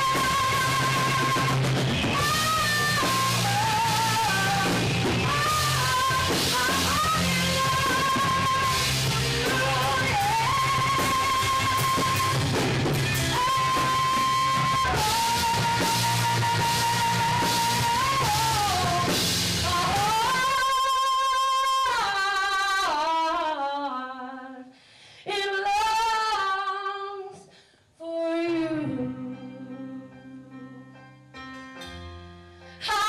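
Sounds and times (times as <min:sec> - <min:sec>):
live rock band playing: 0:00.0 - 0:21.1.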